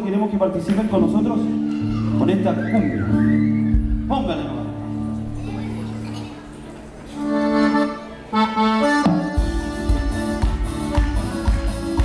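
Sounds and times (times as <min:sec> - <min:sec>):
drums and bass beat: 0:03.7 - 0:04.4, 0:09.0 - 0:12.0
accordion playing chords: 0:04.6 - 0:12.0.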